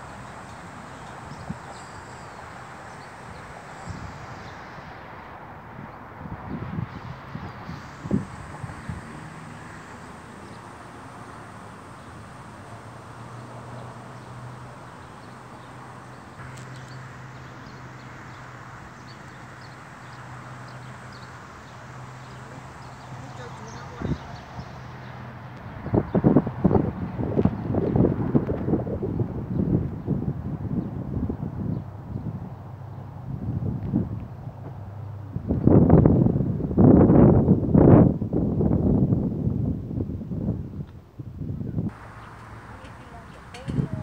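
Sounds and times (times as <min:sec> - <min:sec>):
distant voices: 0:00.0 - 0:28.4, 0:41.9 - 0:44.0
steady low hum: 0:00.0 - 0:36.8, 0:41.5 - 0:44.0
wind buffeting microphone: 0:00.0 - 0:44.0.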